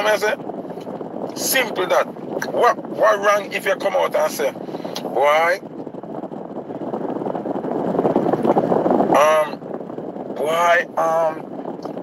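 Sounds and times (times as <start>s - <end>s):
road and wind noise in car: 0.0s - 12.0s
wind buffeting microphone: 0.0s - 12.0s.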